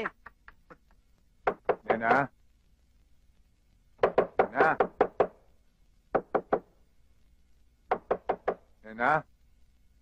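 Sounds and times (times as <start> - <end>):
knocking on a door: 1.4 - 2.3, 4.0 - 5.4, 6.1 - 6.7, 7.9 - 8.7
man calling out: 1.9 - 2.3.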